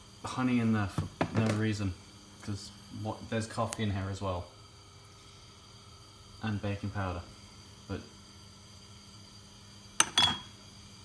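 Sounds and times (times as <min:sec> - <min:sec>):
glass bottles clinking: 0:10.0 - 0:10.5.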